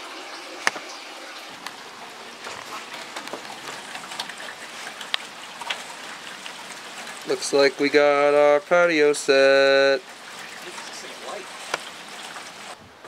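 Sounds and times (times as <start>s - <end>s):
rain drop hits: 1.5s - 12.8s
light rain hiss: 1.5s - 13.0s.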